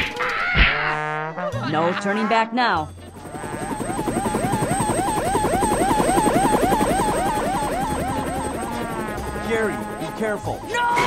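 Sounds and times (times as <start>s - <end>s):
cartoon helicopter rotor chop: 1.9s - 11.0s.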